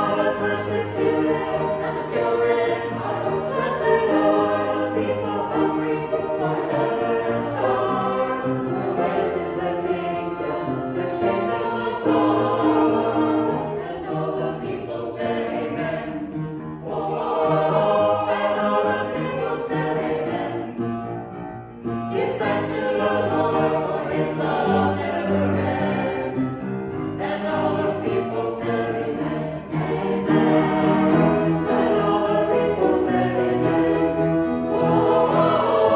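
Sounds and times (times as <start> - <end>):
choir singing: 0.0 - 21.1, 22.1 - 35.9.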